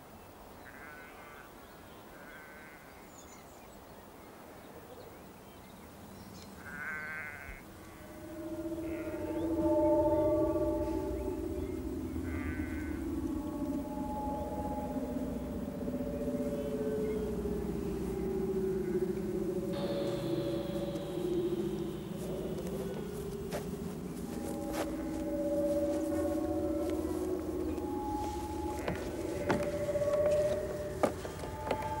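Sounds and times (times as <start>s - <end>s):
soft music of long held notes: 5.2s - 32.0s
sheep bleating: 6.6s - 7.6s, 12.3s - 12.9s.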